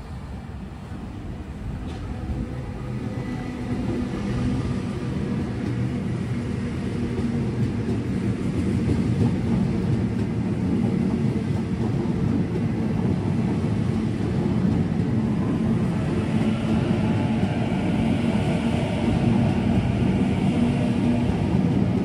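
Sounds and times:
train equipment low hum: 0.0s - 22.0s.

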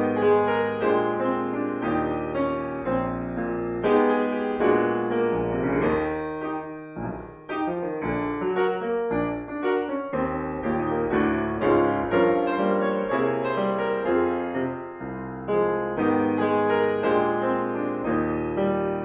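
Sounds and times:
solo grand piano chords: 0.0s - 19.0s.

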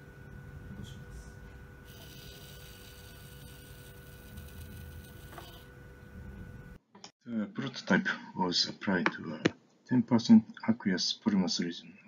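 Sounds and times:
motor hum with low rumble: 0.0s - 6.8s.

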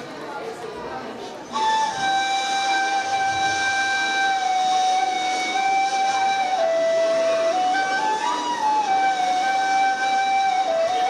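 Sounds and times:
reed flutes holding breathy note: 1.5s - 11.0s.

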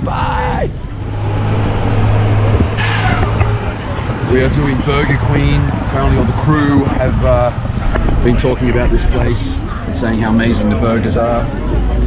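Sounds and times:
vehicle engine humming: 0.0s - 12.0s
voices: 0.0s - 12.0s.

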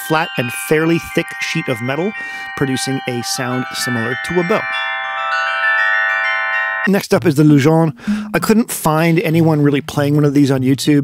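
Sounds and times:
metal bell plates ringing: 0.0s - 6.9s, 8.1s - 8.9s.

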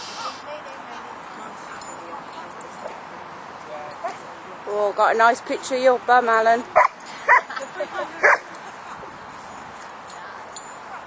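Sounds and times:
outdoor background hiss: 0.0s - 11.0s.

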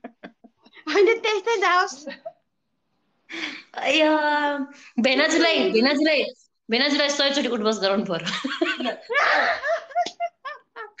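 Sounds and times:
woman laughing: 0.0s - 0.7s, 8.2s - 11.0s
woman speaking: 3.8s - 8.9s.

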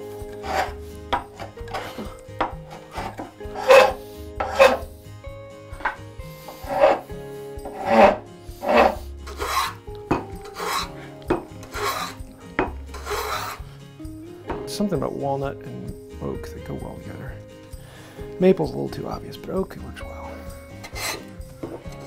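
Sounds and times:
hand plane scraping wood: 0.0s - 4.9s, 5.8s - 9.8s, 10.4s - 12.2s, 12.9s - 13.7s, 20.8s - 22.0s
file rasping on wood: 0.3s - 4.9s, 6.4s - 9.8s, 10.4s - 13.7s, 20.8s - 21.8s.

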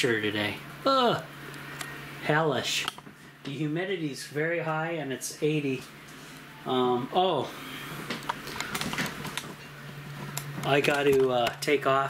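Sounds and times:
faint steady hum: 0.0s - 12.0s
camera handling clicks and rustles: 8.1s - 9.6s.

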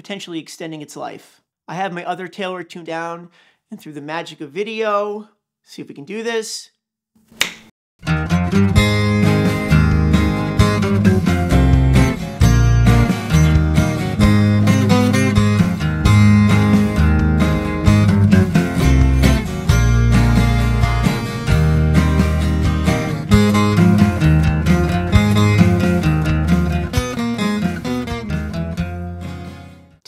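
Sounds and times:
finger snap: 7.3s - 7.7s
acoustic guitar chords: 8.0s - 30.0s.

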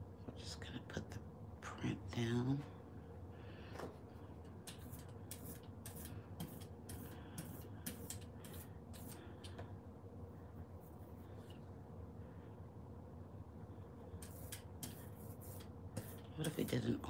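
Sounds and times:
scratchy brush strokes: 4.6s - 9.4s, 14.2s - 17.0s.

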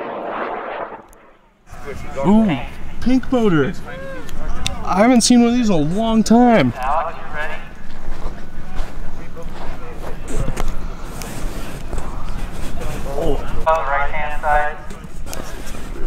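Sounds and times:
people talking: 1.7s - 15.1s.

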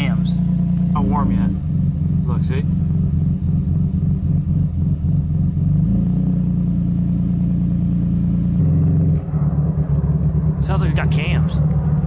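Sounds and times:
car engine idling roughly: 0.0s - 5.7s.

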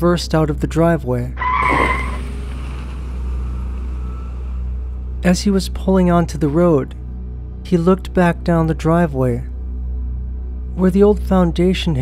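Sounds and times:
car engine running: 1.4s - 5.4s.

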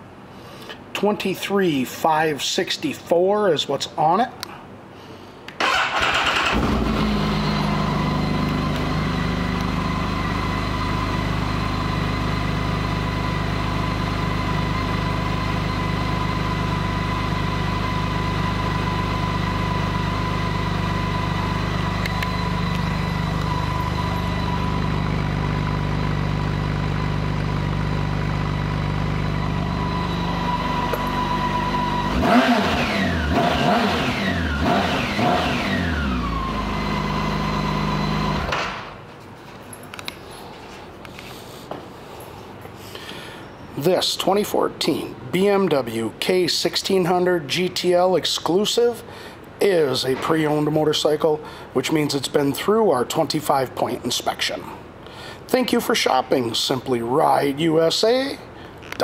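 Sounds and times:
engine revving: 5.6s - 26.0s, 28.7s - 38.5s
motorcycle engine starting and idling: 5.6s - 39.0s
thin high whine: 18.1s - 27.2s, 28.0s - 32.6s.

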